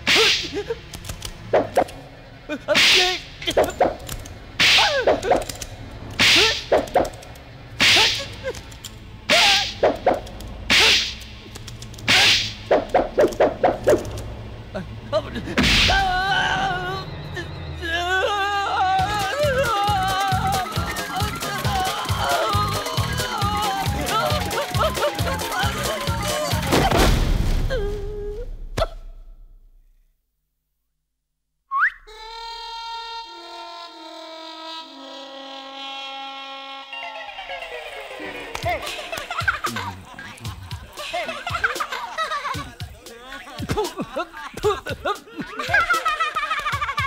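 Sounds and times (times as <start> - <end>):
quick rising whistle: 31.7 - 32.1.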